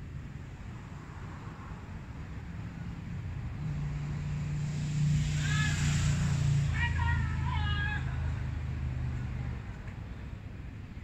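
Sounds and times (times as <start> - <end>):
passing vehicle engine drone: 0.7 - 9.9
distant shouted calls: 5.3 - 8.6.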